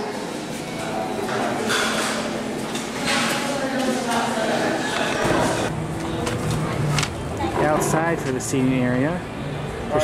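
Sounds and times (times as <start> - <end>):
indistinct voices in a shop: 0.0 - 10.0.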